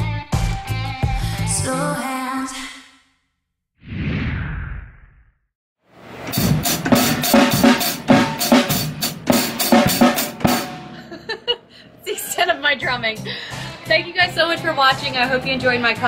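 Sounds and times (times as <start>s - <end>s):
drum kit playing a groove: 6.2s - 11.4s.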